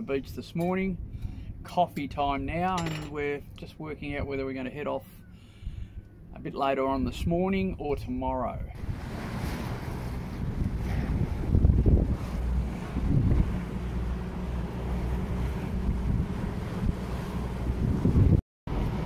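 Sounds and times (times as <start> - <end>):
sea water rushing: 8.8 - 19.0
wind buffeting microphone: 8.8 - 19.0.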